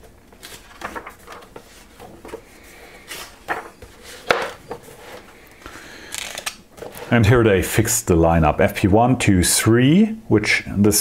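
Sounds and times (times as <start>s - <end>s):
book pages turning and rustling: 0.0s - 7.2s.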